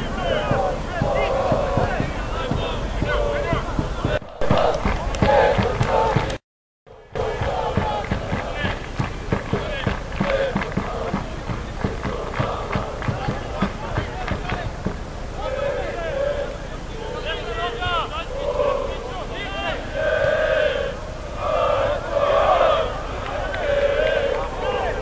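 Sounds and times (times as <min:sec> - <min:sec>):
people shouting and talking: 0:00.0 - 0:06.4, 0:07.0 - 0:25.0
wind rumble on microphone: 0:00.0 - 0:19.2, 0:19.8 - 0:25.0.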